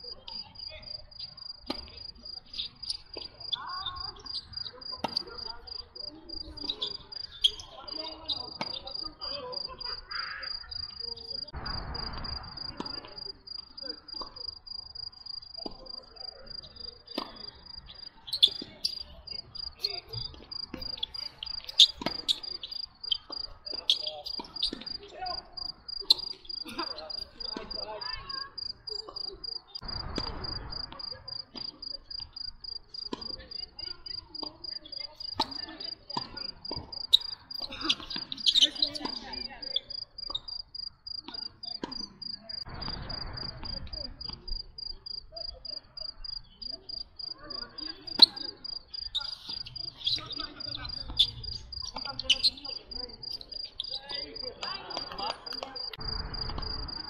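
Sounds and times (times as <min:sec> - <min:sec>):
cricket chirping: 0:00.0 - 0:57.0.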